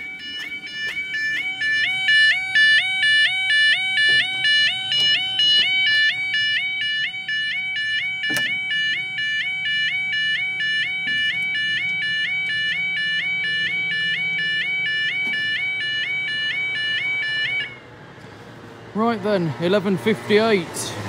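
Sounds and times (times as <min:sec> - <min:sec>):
level crossing alarm warbling: 0:00.0 - 0:17.9.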